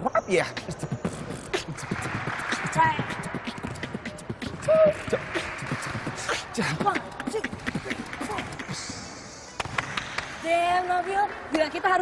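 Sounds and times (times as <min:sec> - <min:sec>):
beatboxing beats: 0:00.0 - 0:10.2.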